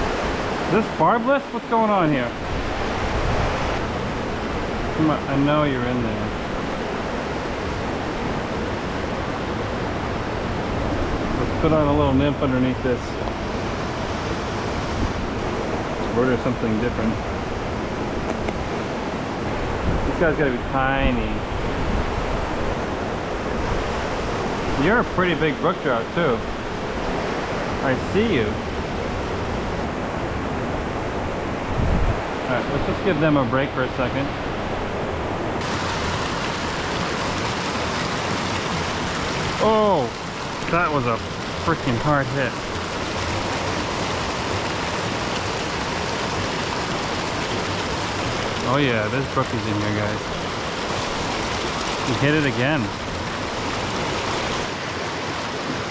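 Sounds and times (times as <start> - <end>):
brook rushing over rocks: 35.6 - 55.9.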